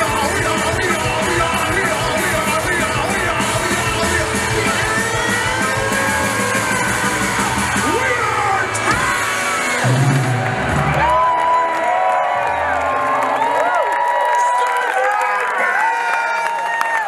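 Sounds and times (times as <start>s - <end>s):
live rock band playing: 0.0s - 11.5s
crowd whooping and cheering: 0.0s - 17.0s.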